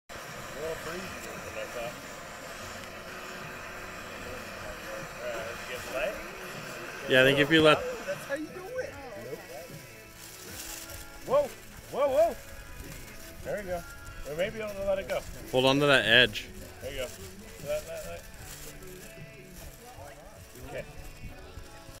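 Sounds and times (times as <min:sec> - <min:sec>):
faint background music: 0:00.1 - 0:22.0
steady background noise: 0:00.1 - 0:22.0
people talking indistinctly: 0:00.3 - 0:22.0.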